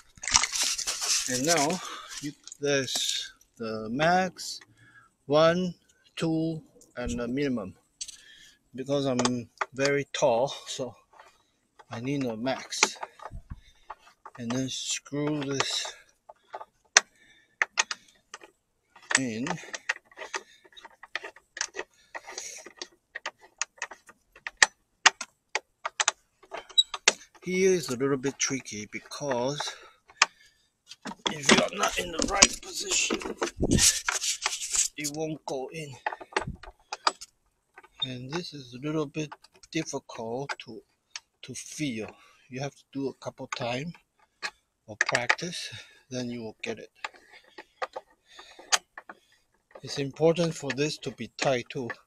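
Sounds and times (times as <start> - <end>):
plastic and metal parts clicking: 0.0 - 3.2, 9.1 - 38.5, 39.1 - 42.3, 43.2 - 52.0.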